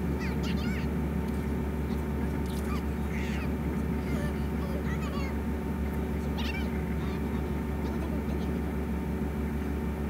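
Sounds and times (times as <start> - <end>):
steady low hum: 0.0 - 10.0
high wavering cartoon cries: 2.7 - 5.3.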